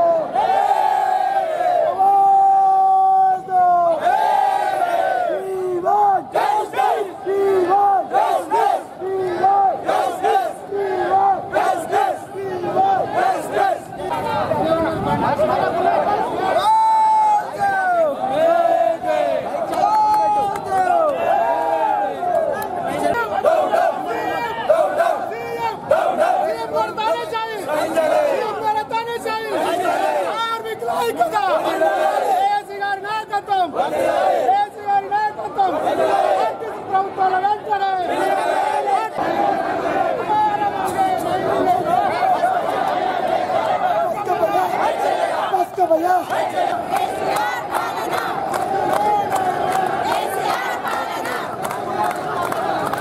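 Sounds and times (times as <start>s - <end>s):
crowd of men shouting slogan: 0.0s - 53.0s
men shouting slogans together: 22.9s - 28.6s, 31.2s - 32.5s, 38.0s - 47.6s.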